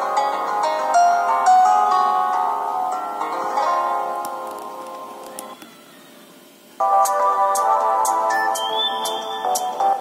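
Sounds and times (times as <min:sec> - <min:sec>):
phone ringtone chord: 0:06.8 - 0:10.0.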